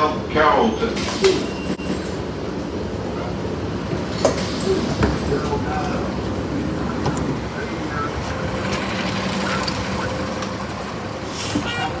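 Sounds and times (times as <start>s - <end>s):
bus engine hum: 0.0s - 12.0s.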